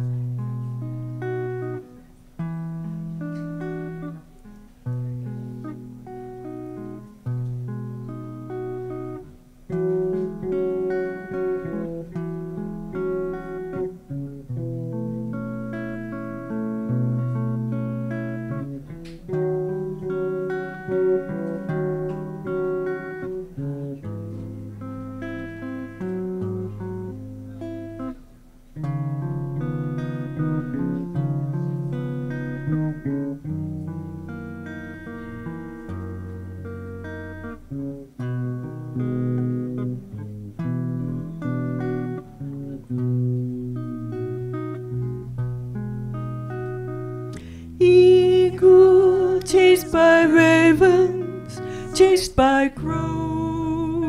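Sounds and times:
electric guitar picking single notes: 0.0s - 54.0s.

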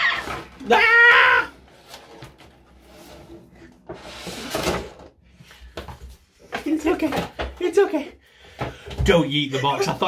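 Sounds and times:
plastic tray scraping: 1.5s - 5.1s.

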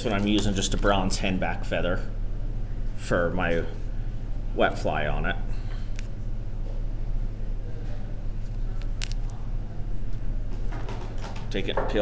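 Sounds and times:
low hum: 0.0s - 11.1s.

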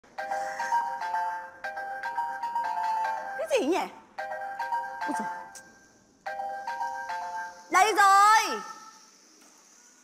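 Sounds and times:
phone ringtone melody: 0.1s - 7.7s.

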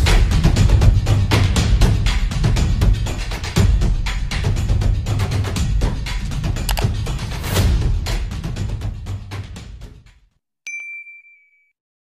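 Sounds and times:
notification bell ding: 10.7s - 11.7s.

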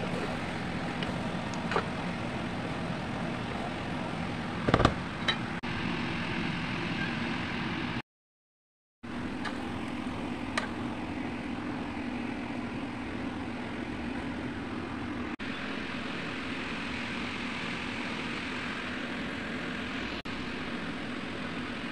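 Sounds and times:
steady mechanical drone: 0.0s - 8.0s, 9.1s - 21.9s.

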